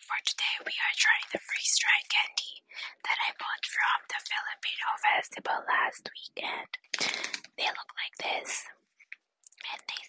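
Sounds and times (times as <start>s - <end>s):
woman whispering: 0.0s - 8.8s, 9.5s - 10.0s.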